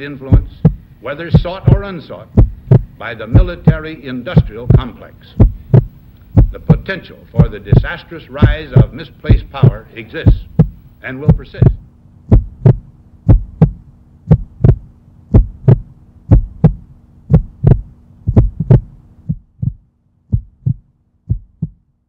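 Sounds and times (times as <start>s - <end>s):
steady low hum: 0.0s - 22.0s
heartbeat thumps: 0.2s - 21.9s.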